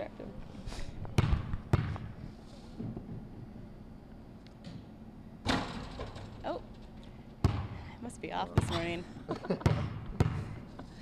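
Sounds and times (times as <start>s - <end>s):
ball striking the hoop: 1.2s - 2.1s, 4.6s - 6.4s, 7.4s - 7.8s, 8.6s - 9.0s, 9.6s - 10.5s
basketball bouncing on gym floor: 1.2s - 2.1s, 7.4s - 7.9s, 8.5s - 9.0s, 9.6s - 10.6s.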